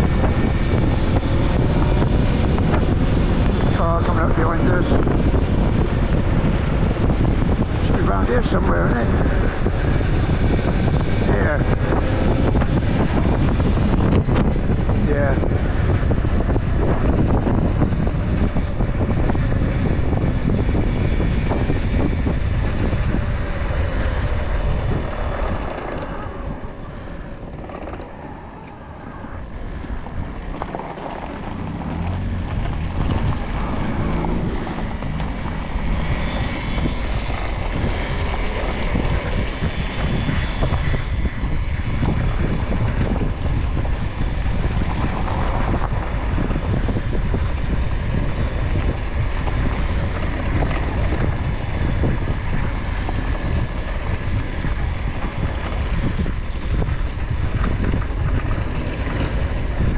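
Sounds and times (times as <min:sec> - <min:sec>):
wind rushing over microphone: 0:00.0 - 0:59.9
tyre rumble: 0:24.8 - 0:40.4.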